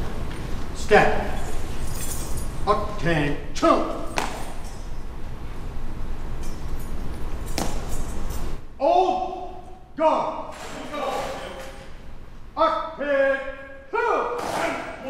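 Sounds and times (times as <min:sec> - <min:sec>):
drill commands shouted: 0:02.7 - 0:04.1, 0:08.8 - 0:11.8, 0:12.5 - 0:15.0.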